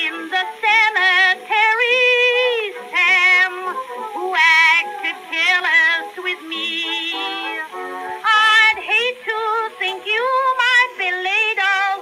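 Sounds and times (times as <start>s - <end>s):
instrumental accompaniment: 0.0s - 12.0s
woman singing with vibrato: 0.0s - 12.0s.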